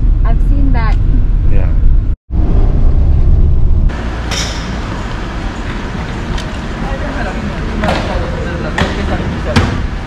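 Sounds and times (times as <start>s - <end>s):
steady outdoor noise: 0.0s - 10.0s
vehicle rumbling: 0.0s - 10.0s.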